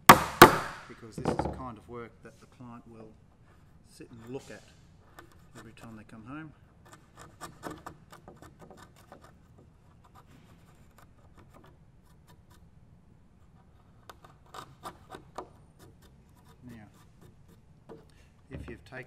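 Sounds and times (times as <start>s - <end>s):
chisel scraping wood: 3.4s - 12.8s, 13.4s - 19.0s.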